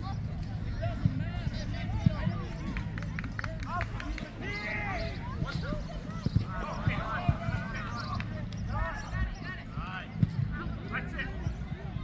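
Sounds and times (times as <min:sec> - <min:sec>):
distant voices calling: 0:00.0 - 0:11.0.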